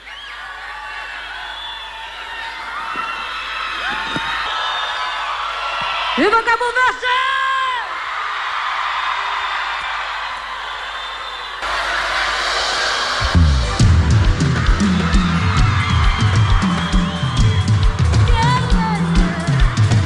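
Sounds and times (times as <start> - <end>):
audience cheering: 0.0 - 20.0
bass guitar: 13.3 - 20.0
kick drum beating: 13.8 - 20.0.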